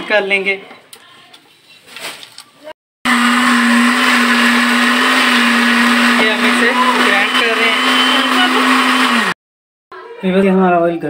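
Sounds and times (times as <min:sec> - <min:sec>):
electric blender running: 0:03.1 - 0:09.4.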